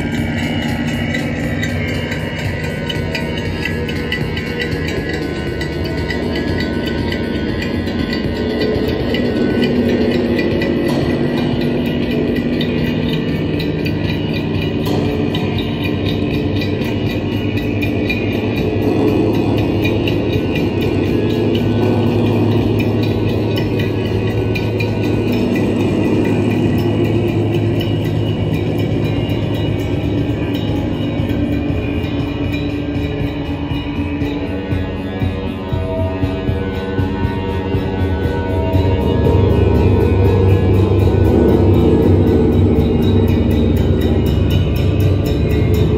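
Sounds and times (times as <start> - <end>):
gong drone: 0.0 - 45.9.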